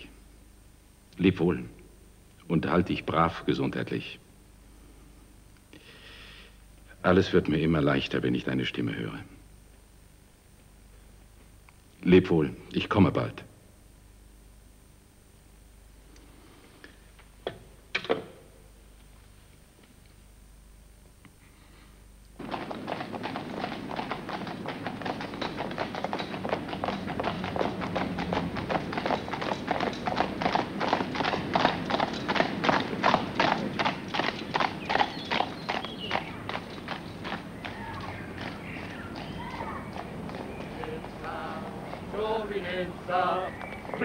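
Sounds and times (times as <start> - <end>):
horse hooves trotting on pavement: 22.4 - 44.0.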